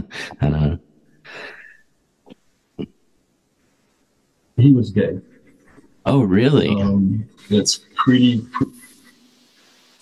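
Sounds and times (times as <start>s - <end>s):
man speaking quietly: 6.5s - 9.0s.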